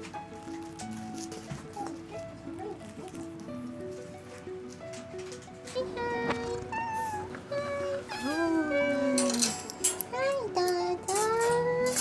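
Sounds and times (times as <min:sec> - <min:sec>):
cat meowing: 0:06.6 - 0:09.3.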